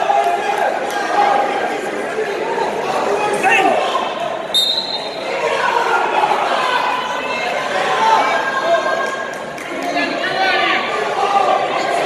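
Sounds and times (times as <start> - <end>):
people shouting and talking: 0.0 - 12.0
referee's whistle blast: 4.5 - 5.2.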